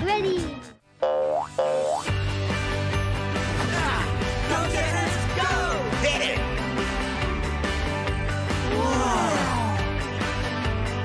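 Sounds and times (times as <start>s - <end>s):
cartoon boing sound effects: 1.0s - 2.1s.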